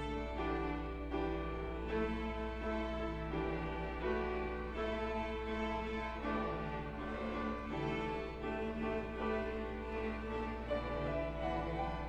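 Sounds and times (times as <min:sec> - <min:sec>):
string orchestra playing: 0:00.0 - 0:12.0.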